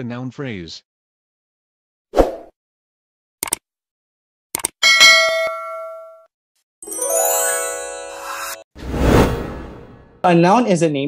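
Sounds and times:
bell-like ding: 0:04.8 - 0:06.3
bright chiming jingle: 0:06.8 - 0:08.6.

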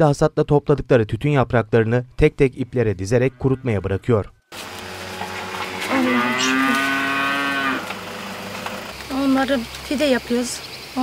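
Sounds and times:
cow mooing: 0:03.0 - 0:04.0, 0:04.6 - 0:08.8.

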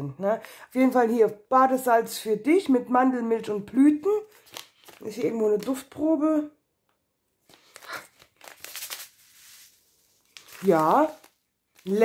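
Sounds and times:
packaging crinkling and rustling: 0:04.2 - 0:05.2, 0:07.4 - 0:12.0.

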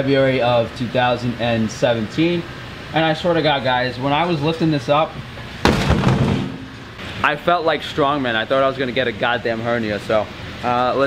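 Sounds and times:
heavy thump: 0:05.6 - 0:06.9.

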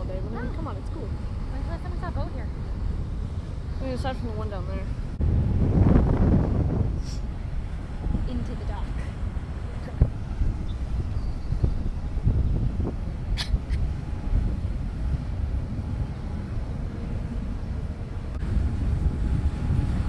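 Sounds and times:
ship engine rumble: 0:00.0 - 0:20.0
wind on microphone: 0:00.0 - 0:20.0.

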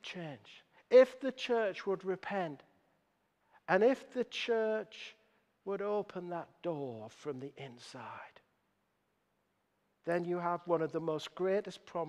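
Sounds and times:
man speaking: 0:00.0 - 0:02.7, 0:03.6 - 0:08.5, 0:10.0 - 0:12.0.

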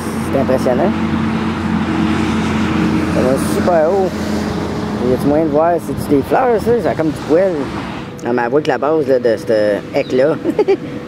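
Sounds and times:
road noise: 0:00.0 - 0:11.0
vehicle engine humming: 0:00.0 - 0:11.0.

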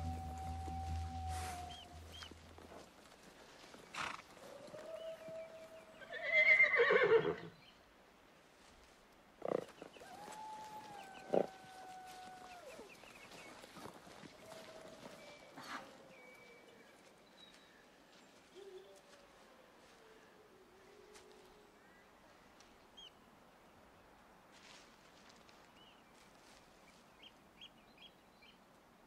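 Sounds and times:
music: 0:00.0 - 0:02.5
horse whinnying: 0:06.0 - 0:07.5.

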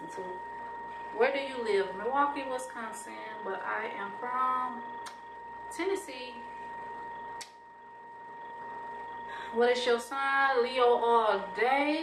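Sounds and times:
high-pitched whine: 0:00.0 - 0:12.0
sharp click: 0:05.0 - 0:05.2.

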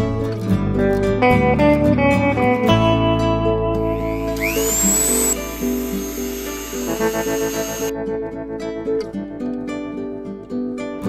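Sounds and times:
rotary tool high whine: 0:04.0 - 0:07.9.

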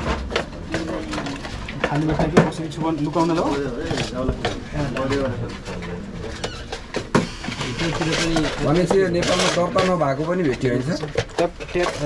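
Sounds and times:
men talking: 0:00.5 - 0:12.0.

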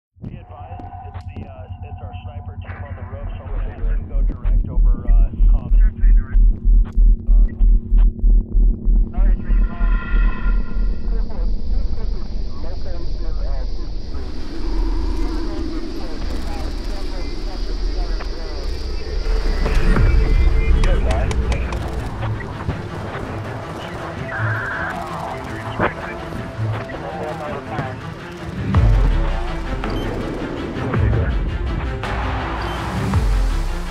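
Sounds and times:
deep steady rumble: 0:00.2 - 0:33.9
faint voices: 0:00.3 - 0:06.3, 0:11.1 - 0:28.3
helicopter rotor beating: 0:09.1 - 0:33.8.

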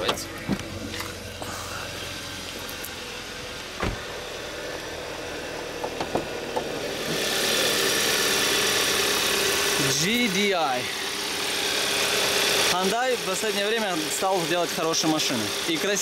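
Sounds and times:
car engine idling: 0:00.0 - 0:16.0
thump: 0:03.8 - 0:04.1.

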